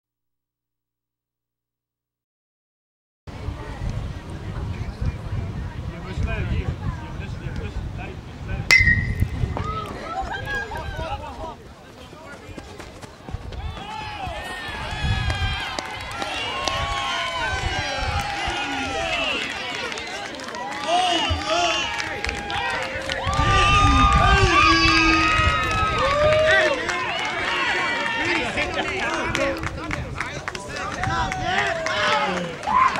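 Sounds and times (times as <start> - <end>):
crowd yelling and cheering: 8.8 - 11.4, 13.4 - 32.9
long falling shout: 20.6 - 28.3.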